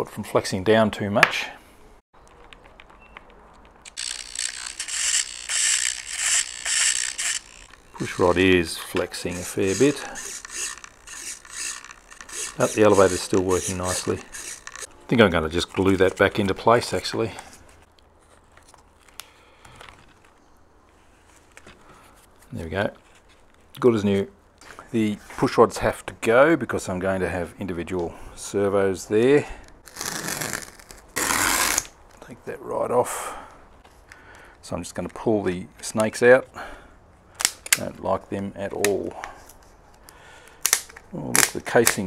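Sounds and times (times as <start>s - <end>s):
servo whirring in bursts: 3.9s - 8.6s, 9.2s - 14.9s
soft rustle: 15.5s - 23.7s.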